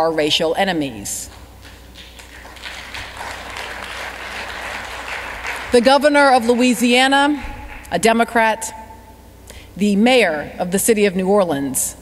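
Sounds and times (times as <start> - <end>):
low steady hum: 0.0 - 12.0
audience applause: 2.0 - 6.7.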